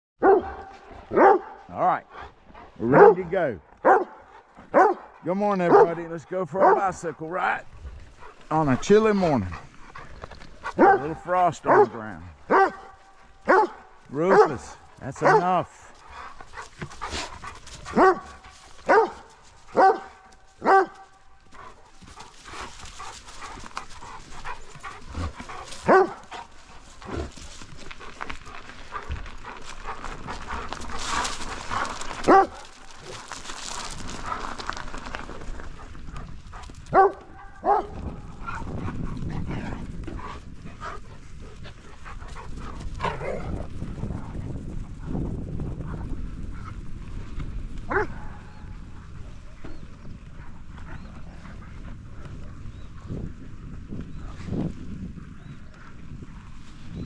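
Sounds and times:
dog barking: 0:00.2 - 0:01.6, 0:02.8 - 0:06.0, 0:06.6 - 0:06.9, 0:10.8 - 0:15.5, 0:17.9 - 0:21.1, 0:25.8 - 0:26.3, 0:32.3 - 0:32.6, 0:36.9 - 0:38.0, 0:47.9 - 0:48.4.

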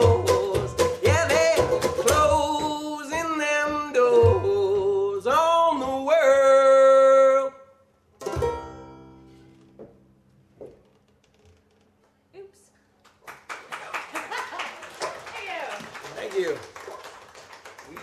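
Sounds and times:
acoustic string band: 0:00.0 - 0:06.0, 0:08.2 - 0:09.9
man singing: 0:00.0 - 0:07.8.

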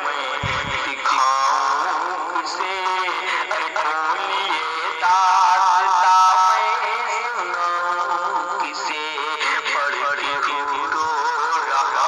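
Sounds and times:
solo devotional singing: 0:00.0 - 0:12.0.

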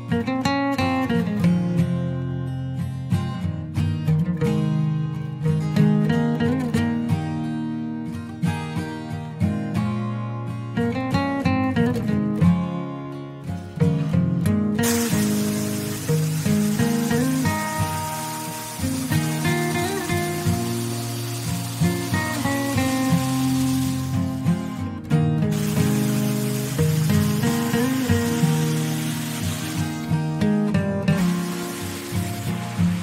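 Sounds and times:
acoustic guitar music: 0:00.0 - 0:33.0
electric jigsaw cutting wood: 0:14.8 - 0:24.5, 0:25.5 - 0:30.3, 0:31.1 - 0:33.0.

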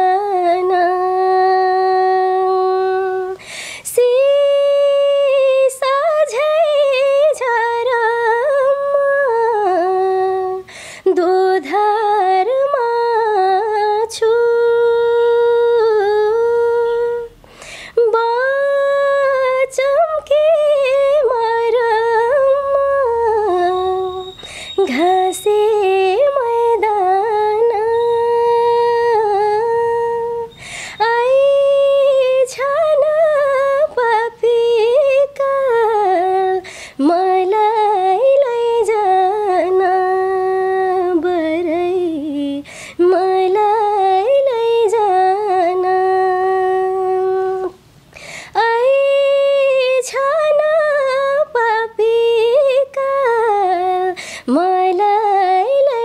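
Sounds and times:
woman singing unaccompanied: 0:00.0 - 0:56.0
singer breathing in: 0:03.4 - 0:03.9, 0:10.7 - 0:11.1, 0:17.4 - 0:18.0, 0:24.4 - 0:24.8, 0:30.5 - 0:31.0, 0:36.6 - 0:37.0, 0:42.6 - 0:43.0, 0:48.0 - 0:48.6, 0:54.2 - 0:54.5.

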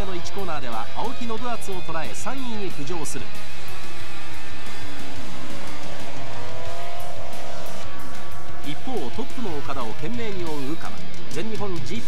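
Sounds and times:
background music: 0:00.0 - 0:12.0
racing motorcycles at full throttle: 0:00.0 - 0:12.0.

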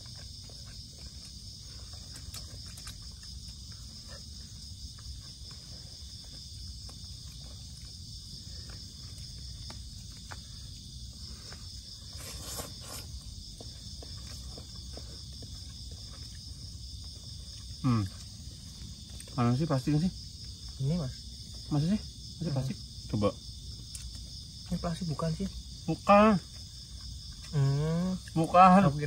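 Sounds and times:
night insects chorus: 0:00.0 - 0:29.0.

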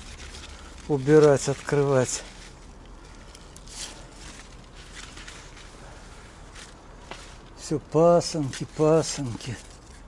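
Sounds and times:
faint rustling of leaves: 0:00.0 - 0:10.0.

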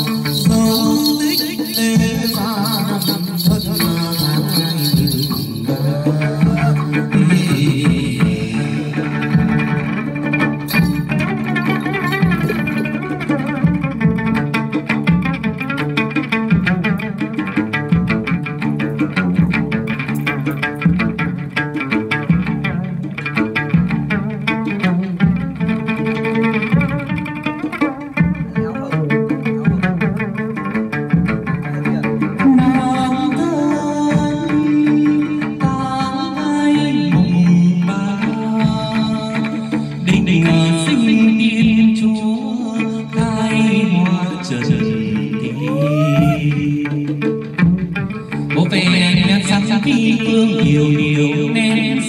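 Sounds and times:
clapping percussion beat: 0:00.0 - 0:07.8, 0:10.7 - 0:13.2
string instruments playing: 0:00.0 - 0:52.0.

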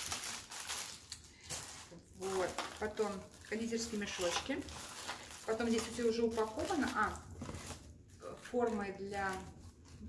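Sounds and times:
piping bags rustling and crinkling: 0:00.0 - 0:10.0.

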